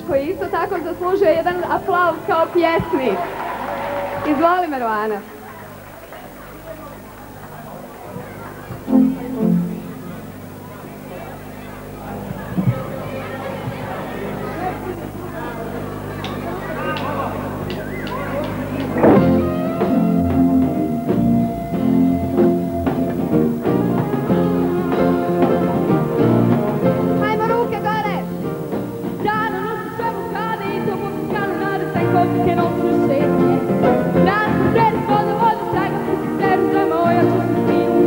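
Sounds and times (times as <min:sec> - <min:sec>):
guitar: 0:00.0 - 0:38.0
room voices: 0:00.0 - 0:38.0
keyboard: 0:05.4 - 0:38.0
electronic keyboard: 0:08.1 - 0:10.8, 0:17.5 - 0:28.7
bass line: 0:08.7 - 0:10.7, 0:17.4 - 0:29.2
steady drum beat: 0:18.4 - 0:27.1
woman singing: 0:29.2 - 0:38.0.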